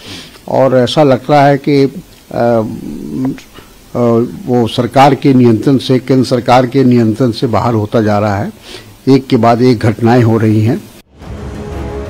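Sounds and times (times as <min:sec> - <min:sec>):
man's hesitating voice: 0:02.3 - 0:04.6.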